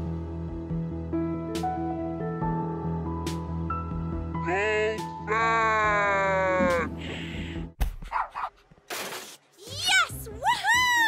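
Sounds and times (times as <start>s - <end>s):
background music: 0.0s - 7.8s, 9.6s - 11.0s.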